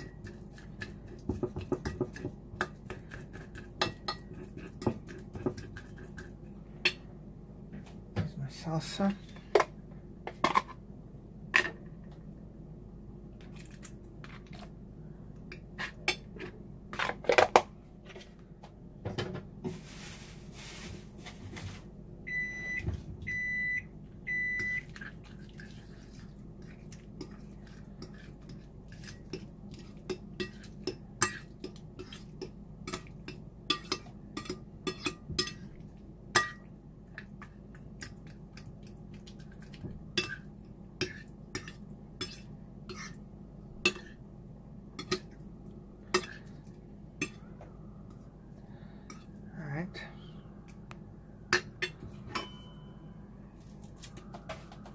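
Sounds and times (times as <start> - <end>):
appliance timer beeps: 22.3 - 24.9.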